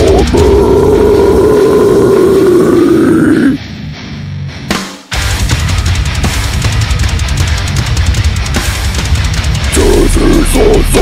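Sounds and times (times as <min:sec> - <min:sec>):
guttural vocal growl: 0:00.0 - 0:03.6, 0:09.7 - 0:11.0
heavy metal music: 0:00.0 - 0:11.0.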